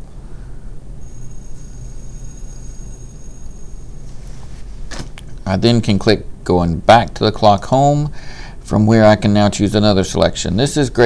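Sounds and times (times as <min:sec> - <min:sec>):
faint high whine: 0:00.0 - 0:11.0
low background hum: 0:00.0 - 0:11.0.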